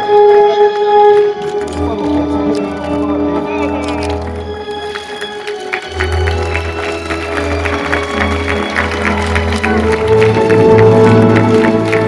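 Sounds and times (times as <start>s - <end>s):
crowd clapping: 0.0s - 12.0s
music with steady bass line: 9.0s - 12.0s.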